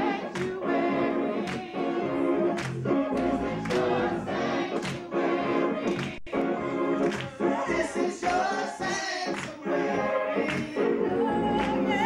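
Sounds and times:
choir singing gospel song: 0:00.0 - 0:12.0
hand claps on a steady beat: 0:00.3 - 0:00.6, 0:01.4 - 0:01.8, 0:02.6 - 0:03.9, 0:04.7 - 0:05.1, 0:05.9 - 0:06.4, 0:07.0 - 0:07.4, 0:09.3 - 0:09.6, 0:10.5 - 0:10.8.

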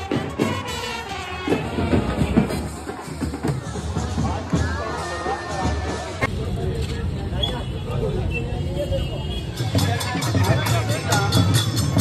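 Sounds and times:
music: 0:00.0 - 0:06.4, 0:09.4 - 0:12.0
loud drum beats: 0:00.0 - 0:06.7, 0:09.4 - 0:12.0
crowd babble: 0:00.0 - 0:12.0.

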